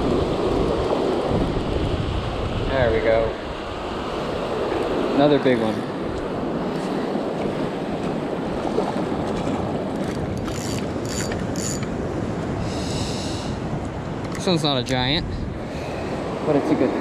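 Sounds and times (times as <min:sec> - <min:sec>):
surf washing: 0:00.0 - 0:17.0
wind on microphone: 0:00.0 - 0:17.0
fishing reel whirring and clicking: 0:10.4 - 0:11.9.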